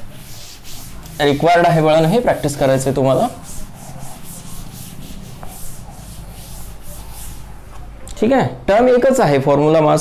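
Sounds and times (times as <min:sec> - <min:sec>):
cloth wiping chalkboard: 0:00.0 - 0:08.0.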